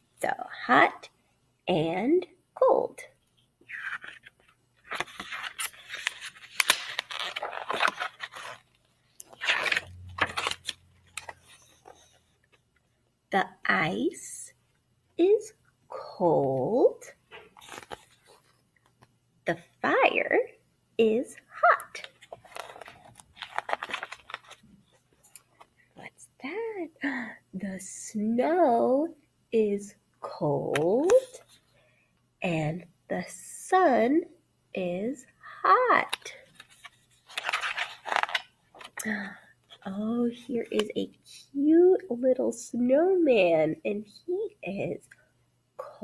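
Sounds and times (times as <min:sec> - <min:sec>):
book pages rustling: 0:03.6 - 0:12.9, 0:17.3 - 0:19.2, 0:21.8 - 0:26.0, 0:30.7 - 0:31.6, 0:36.0 - 0:39.1.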